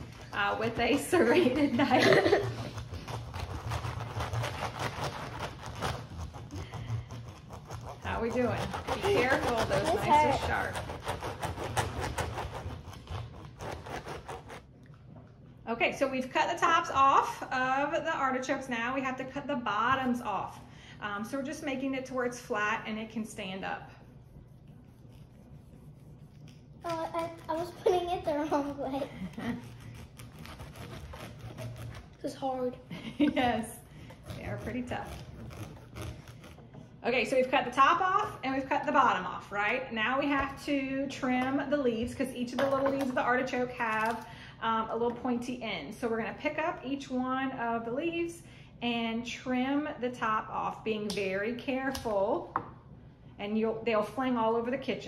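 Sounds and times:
knife sawing through artichokes: 0:02.3 - 0:14.6, 0:29.5 - 0:32.3, 0:34.1 - 0:36.7.

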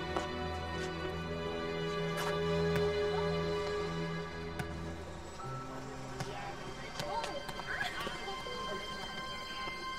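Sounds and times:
background music with sustained tones: 0:00.0 - 0:09.9
basketball bouncing on paving stones: 0:04.5 - 0:04.8.

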